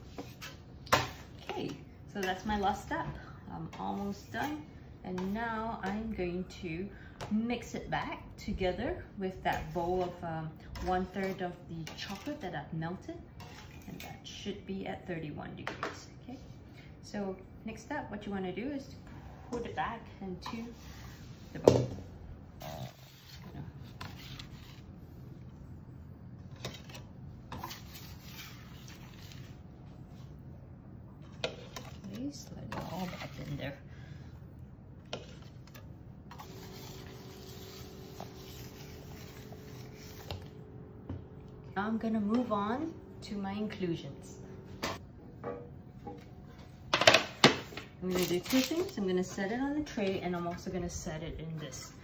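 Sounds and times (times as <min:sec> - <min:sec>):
spatula scraping steel bowl: 0:13.4 - 0:14.2, 0:22.6 - 0:24.9, 0:27.5 - 0:29.6, 0:31.4 - 0:33.8, 0:35.1 - 0:40.5.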